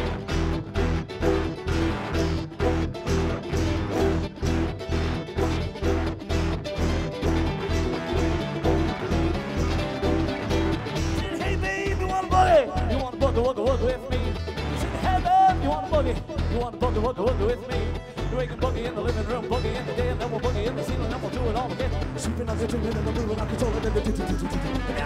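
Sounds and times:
mandolin and banjo picking: 0:00.0 - 0:25.0
upright bass and drums: 0:00.0 - 0:25.0.

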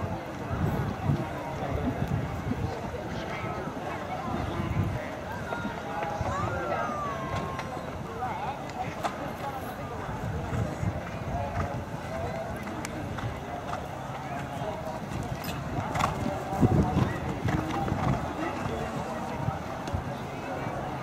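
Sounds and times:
spectators chattering: 0:00.0 - 0:21.0.

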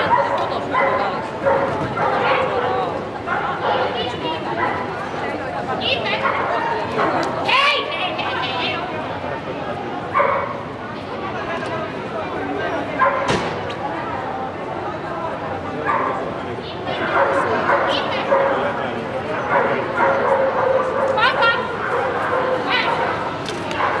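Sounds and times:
dogs barking and yipping: 0:00.0 - 0:04.9, 0:10.2 - 0:10.6, 0:17.0 - 0:18.7, 0:19.3 - 0:24.0
people talking: 0:00.0 - 0:10.2, 0:10.9 - 0:24.0.

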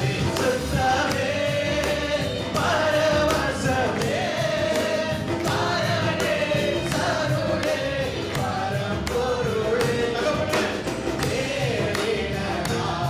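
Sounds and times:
drums steady beat: 0:00.0 - 0:13.0
keyboard: 0:00.0 - 0:13.0.

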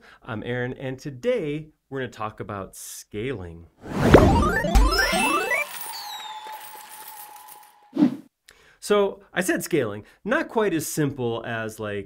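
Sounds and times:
falling whistle: 0:04.3 - 0:08.0.

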